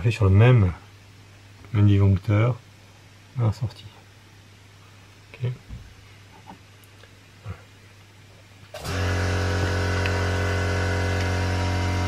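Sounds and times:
low machine hum: 0:08.8 - 0:12.0.

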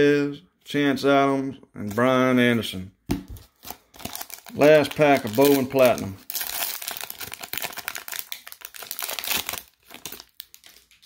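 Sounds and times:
wrapper crinkling: 0:03.4 - 0:11.0.

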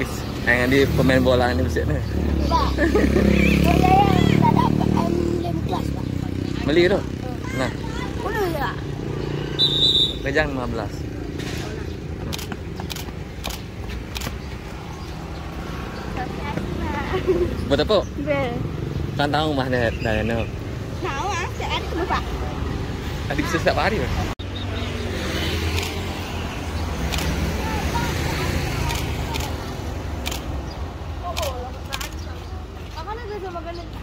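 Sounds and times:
vehicle engines rumbling: 0:00.0 - 0:34.0.

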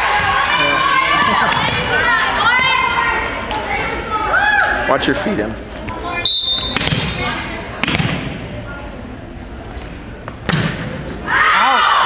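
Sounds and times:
young voices shouting and cheering: 0:00.0 - 0:05.0, 0:11.2 - 0:12.0.

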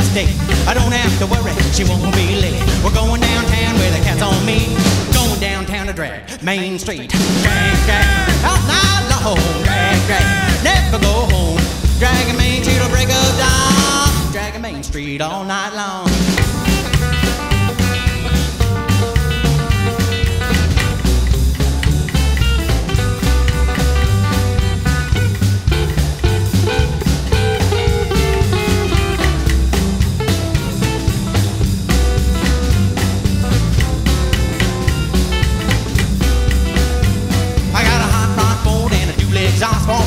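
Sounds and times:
steady drum beat: 0:00.0 - 0:06.2, 0:07.1 - 0:15.2, 0:16.1 - 0:40.0
lead guitar: 0:00.0 - 0:06.5, 0:07.2 - 0:15.4, 0:16.1 - 0:40.0.

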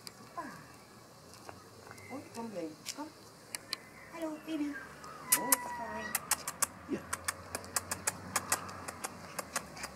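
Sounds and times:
puppy paws clicking on paving: 0:00.0 - 0:09.9.

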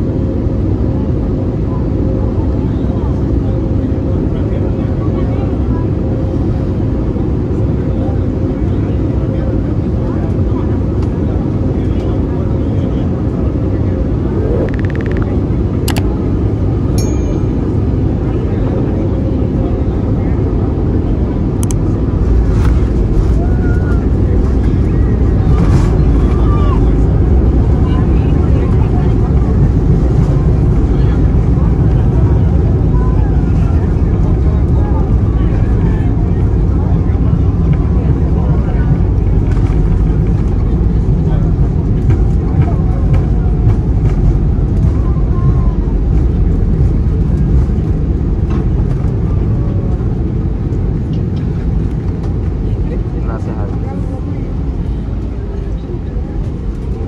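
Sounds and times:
jet engine and airflow rumble: 0:00.0 - 0:57.0
steady whine: 0:11.3 - 0:57.0
sharp clicks: 0:14.6 - 0:15.3.

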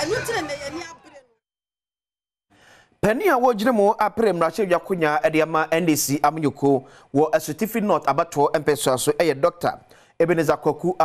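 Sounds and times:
woman's voice: 0:00.0 - 0:01.4
faint breath: 0:02.5 - 0:03.0, 0:06.8 - 0:07.1, 0:09.9 - 0:10.2.

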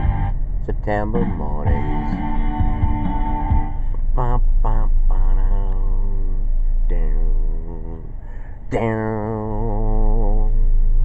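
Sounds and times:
guitar chord ringing: 0:00.0 - 0:05.4
soft low thumps: 0:00.0 - 0:11.0.

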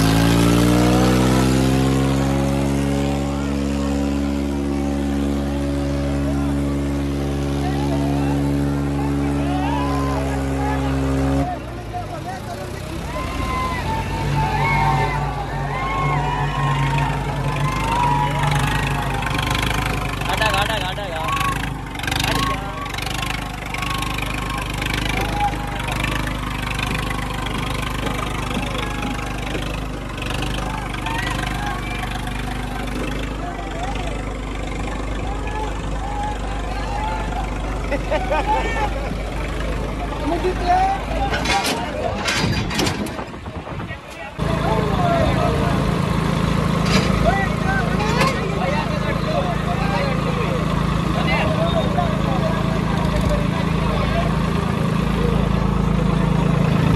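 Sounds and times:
crowd calling out: 0:00.0 - 0:42.9, 0:44.0 - 0:56.9
diesel tractor engines running hard: 0:00.0 - 0:56.9
people shouting: 0:07.3 - 0:11.7, 0:12.8 - 0:39.2.

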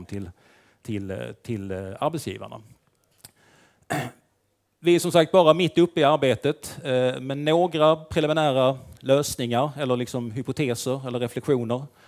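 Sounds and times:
man clearing his throat: 0:03.9 - 0:04.3.

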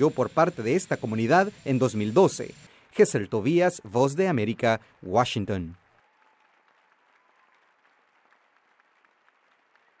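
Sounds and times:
faint audience applause: 0:05.0 - 0:10.0.

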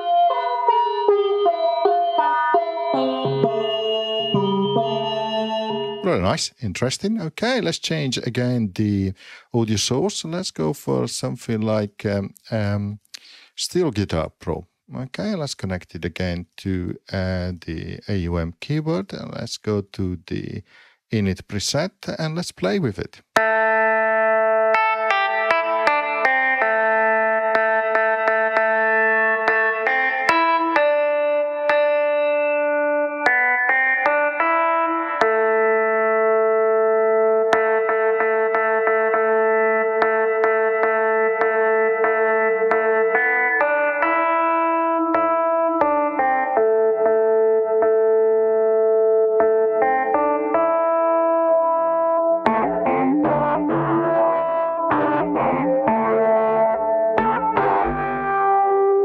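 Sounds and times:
steel guitar ringing notes: 0:00.0 - 0:06.5, 0:23.4 - 0:59.0.

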